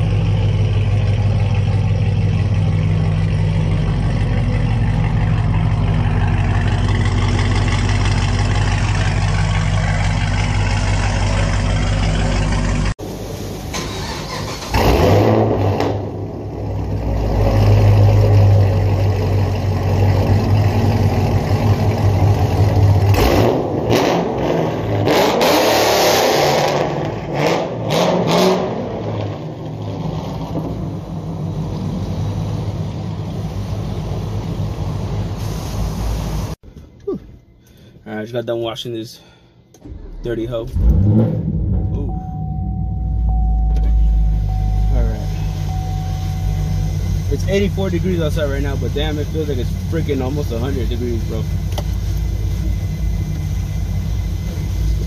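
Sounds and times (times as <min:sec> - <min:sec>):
car exhaust idling and revving: 0:00.0 - 0:13.7, 0:14.7 - 0:36.6, 0:39.8 - 0:55.0.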